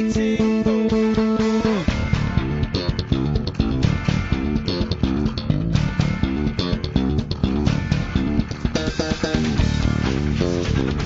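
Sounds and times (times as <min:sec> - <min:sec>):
electric bass line: 0:00.0 - 0:11.0
rock band playing: 0:00.0 - 0:11.0.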